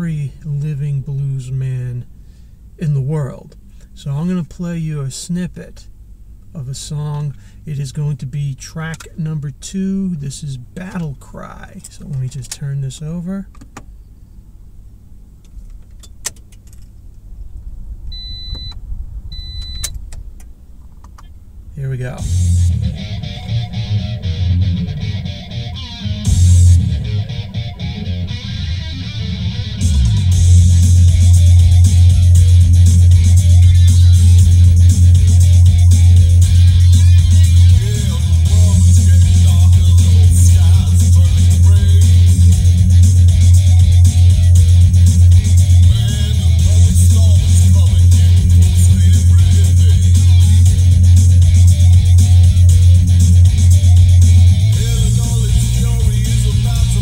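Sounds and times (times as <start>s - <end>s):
rock song through car stereo: 0.0s - 1.4s, 21.2s - 57.0s.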